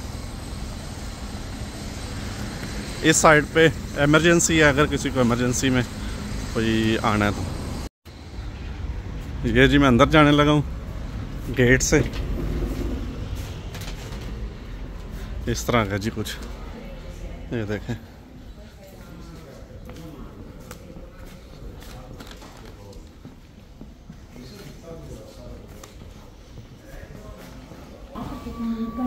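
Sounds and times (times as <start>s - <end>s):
low rumble of urban background noise: 0.0s - 29.0s
low rumble: 8.3s - 15.0s.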